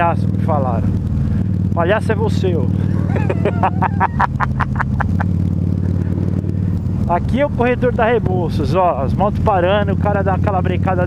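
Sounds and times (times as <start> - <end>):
motorcycle engine running: 0.0 - 11.0
person laughing: 2.8 - 5.3.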